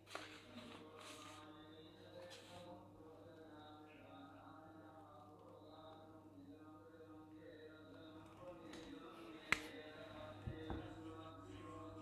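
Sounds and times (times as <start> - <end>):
person chanting: 0.2 - 12.0.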